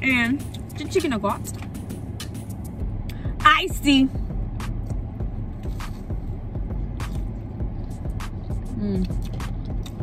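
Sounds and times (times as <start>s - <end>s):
low rumble: 0.0s - 10.0s
person chewing crispy food: 7.0s - 10.0s.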